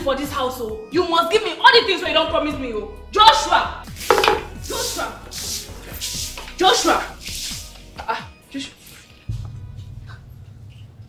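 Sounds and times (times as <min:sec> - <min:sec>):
faint background music: 0:00.0 - 0:11.0
hand broom sweeping floor: 0:03.9 - 0:08.2.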